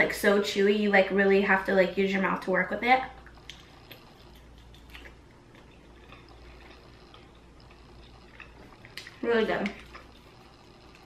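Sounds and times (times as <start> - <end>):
low room hum: 0.0 - 11.0
soft chewing: 3.1 - 11.0.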